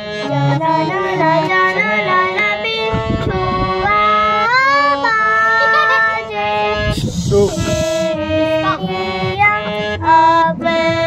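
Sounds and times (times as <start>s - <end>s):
harmonium: 0.0s - 11.0s
girl singing: 0.4s - 7.8s, 8.5s - 11.0s.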